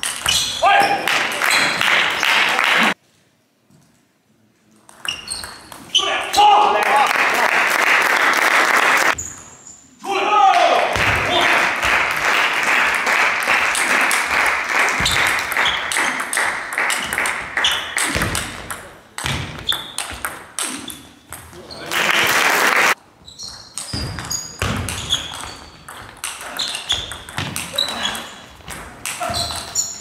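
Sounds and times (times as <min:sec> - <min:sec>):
crowd applause and calls: 0:21.8 - 0:23.0.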